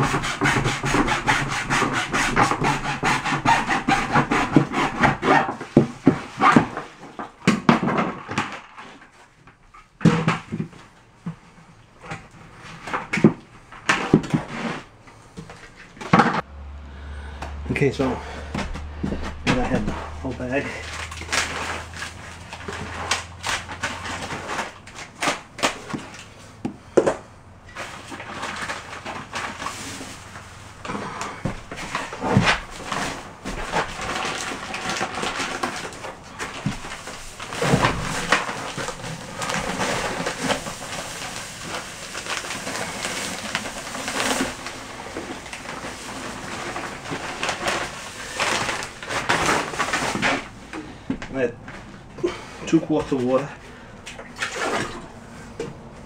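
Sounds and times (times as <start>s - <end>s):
scraping: 11.4s - 55.8s
dry mortar mix pouring into bucket: 27.8s - 50.5s
bag rustling: 27.8s - 52.3s.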